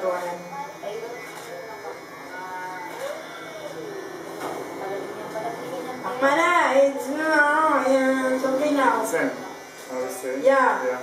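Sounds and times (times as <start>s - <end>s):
faint voices: 0.0s - 10.2s
electric hair clippers buzzing: 0.0s - 11.0s.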